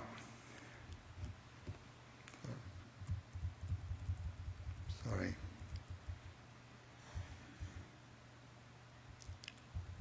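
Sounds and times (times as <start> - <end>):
low microphone hum: 0.0 - 10.0
soft low thumps: 2.5 - 6.4, 9.7 - 10.0.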